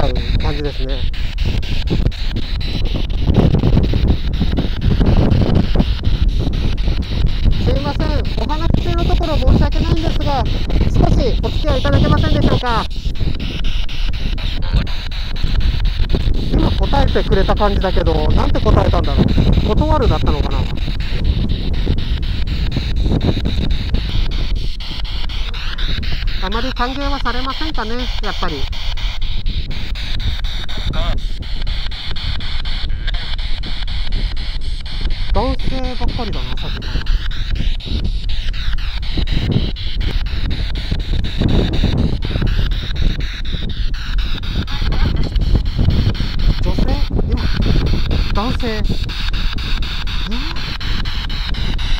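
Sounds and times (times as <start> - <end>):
radio static hiss: 0.0 - 51.9
rapid regular clicks: 0.0 - 51.9
wind buffeting microphone: 0.0 - 51.9.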